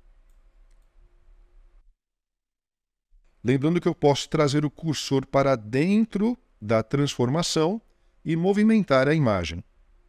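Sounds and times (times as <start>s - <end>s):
low room hum: 0.0s - 2.0s, 3.2s - 10.0s
computer mouse clicks: 0.2s - 1.0s.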